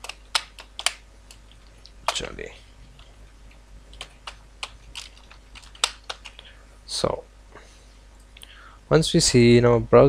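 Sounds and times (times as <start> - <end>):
keyboard key clicks: 0.0 - 1.4, 3.9 - 6.4.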